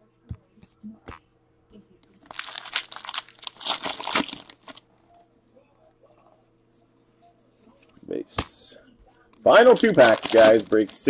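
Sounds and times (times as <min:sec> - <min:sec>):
wrapper tearing and crinkling: 0:02.2 - 0:04.8, 0:09.5 - 0:11.0
faint handling sounds: 0:08.8 - 0:11.0.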